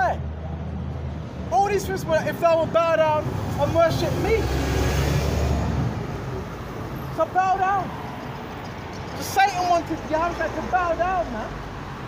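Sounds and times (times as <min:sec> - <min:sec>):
passing vehicle engine rumble: 0:00.0 - 0:12.0
traffic hum: 0:00.0 - 0:12.0.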